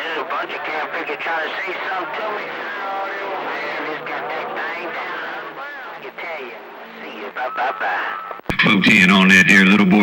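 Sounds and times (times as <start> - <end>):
garbled radio voices: 0.0 - 10.0.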